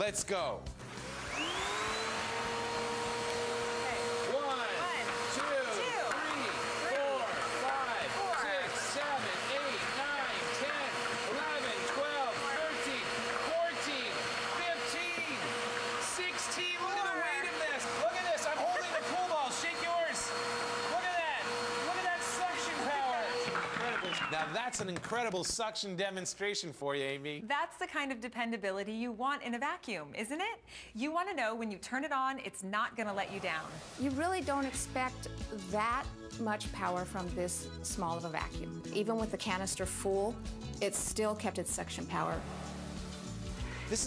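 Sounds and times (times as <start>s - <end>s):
vacuum cleaners whining: 0.8s - 25.0s, 42.1s - 44.0s.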